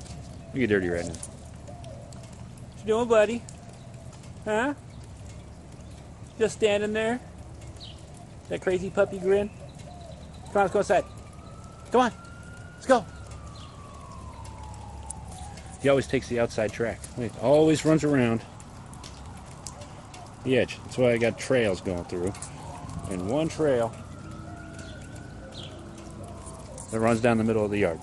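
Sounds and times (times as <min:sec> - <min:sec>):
faint distant siren: 0:00.0 - 0:28.0
dove cooing: 0:00.4 - 0:02.8, 0:07.8 - 0:15.7, 0:19.0 - 0:28.0.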